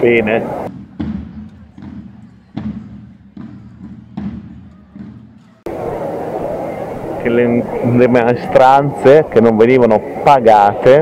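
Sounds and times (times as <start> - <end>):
crowd babble: 0.0 - 11.0
slow beat of low thuds: 0.7 - 5.6.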